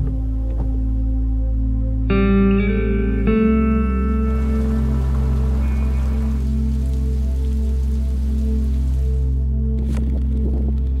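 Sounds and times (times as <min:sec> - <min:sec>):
music of sustained low tones: 0:00.0 - 0:11.0
rain falling: 0:03.8 - 0:09.5.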